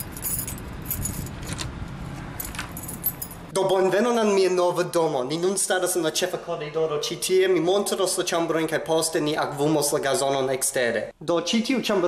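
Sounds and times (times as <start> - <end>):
keys jingling: 0.0 - 1.6, 2.3 - 3.5.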